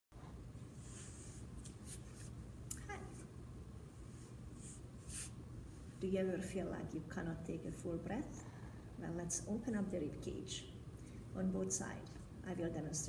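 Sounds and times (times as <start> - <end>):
faint room hum: 0.1 - 13.0.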